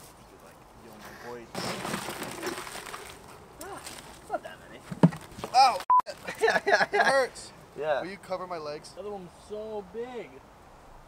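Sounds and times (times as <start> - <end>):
lobster shells rattling and scraping: 1.5 - 4.2.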